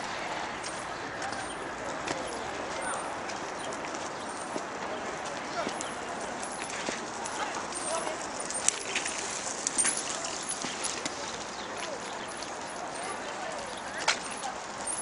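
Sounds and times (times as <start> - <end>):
distant voices: 0.0 - 15.0.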